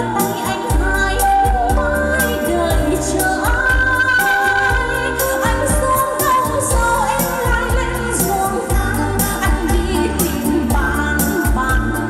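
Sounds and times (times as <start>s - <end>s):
backing music with steady beat: 0.0s - 12.0s
woman singing into microphone: 0.0s - 12.0s.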